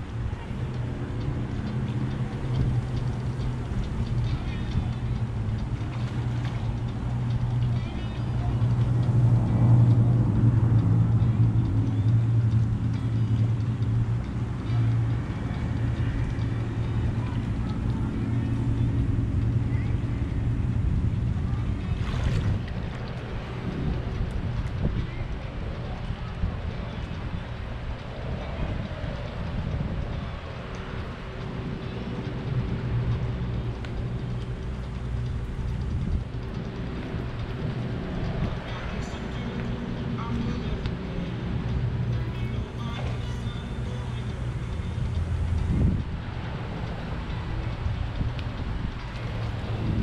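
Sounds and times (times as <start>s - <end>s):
engine humming steadily: 0.0s - 50.0s.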